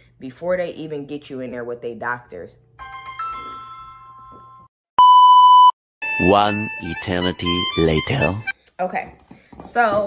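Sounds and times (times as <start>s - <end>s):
censor bleep: 5.0s - 6.4s.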